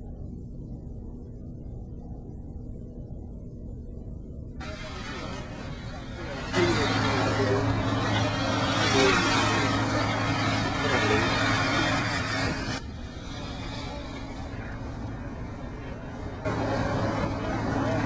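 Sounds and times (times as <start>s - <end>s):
low motor hum: 0.0s - 18.0s
loud rushing noise: 4.6s - 18.0s.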